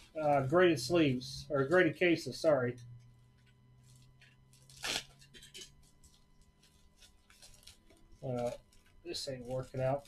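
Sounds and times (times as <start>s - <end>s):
plastic mailer crinkling: 3.9s - 10.0s.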